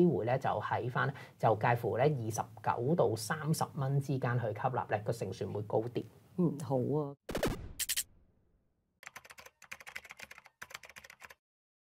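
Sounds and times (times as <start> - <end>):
rapid keyboard typing clicks: 9.0 - 11.4.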